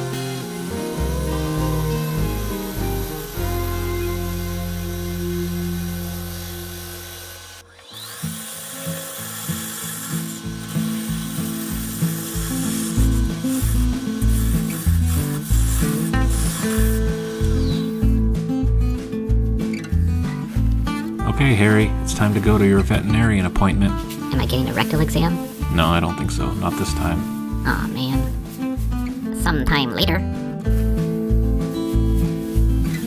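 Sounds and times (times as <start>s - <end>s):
background music: 0.0s - 7.6s, 10.0s - 33.0s
gouge cutting wood on a lathe: 0.0s - 18.2s.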